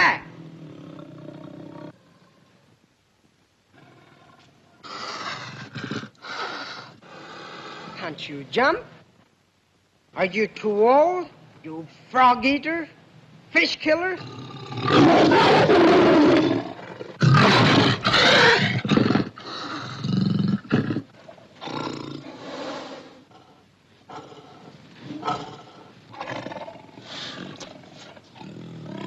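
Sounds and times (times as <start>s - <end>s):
tiger roaring: 0.3s - 2.6s, 14.2s - 29.0s.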